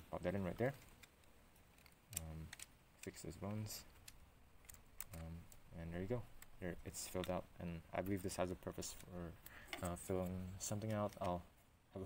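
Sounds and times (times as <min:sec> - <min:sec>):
plastic pieces clicking together: 0:00.7 - 0:03.2.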